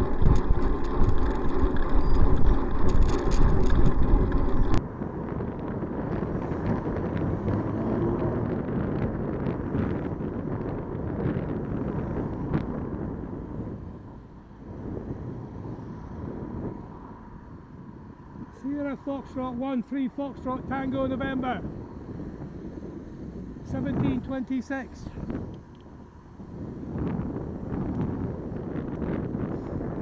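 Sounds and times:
rattling clicks: 0.0s - 4.8s
passing traffic: 0.0s - 30.0s
road and traffic noise: 0.0s - 30.0s
wind buffeting microphone: 0.0s - 30.0s.

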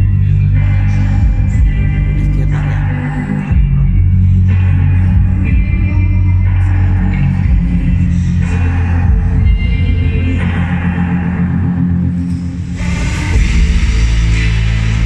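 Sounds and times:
loud music with heavy bass: 0.0s - 15.0s.

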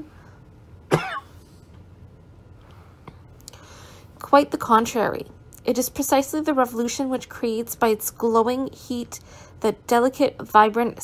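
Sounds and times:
person coughing: 0.9s - 1.5s.

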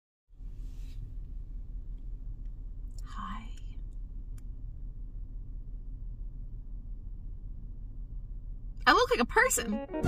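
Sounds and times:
woman whispering: 3.0s - 3.8s.

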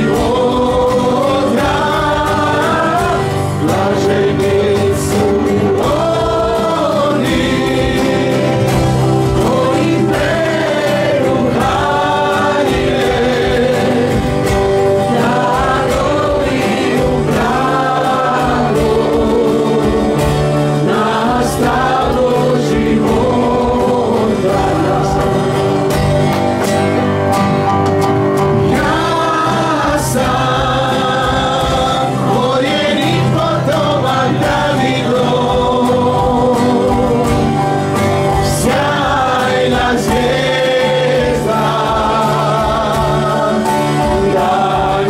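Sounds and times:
group singing praise song: 0.0s - 27.4s, 28.2s - 45.0s
acoustic guitars: 0.0s - 45.0s
keyboard: 0.0s - 45.0s.

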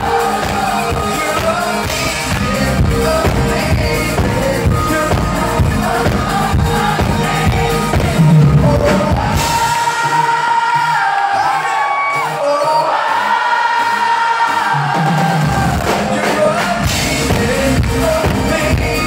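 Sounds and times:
drums: 0.0s - 19.0s
live pop band: 0.0s - 19.0s
male lead singer: 0.0s - 19.0s.

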